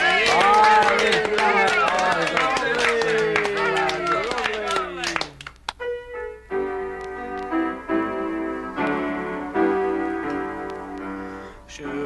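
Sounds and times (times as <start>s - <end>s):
keyboard chords from vinyl record: 5.8s - 12.0s.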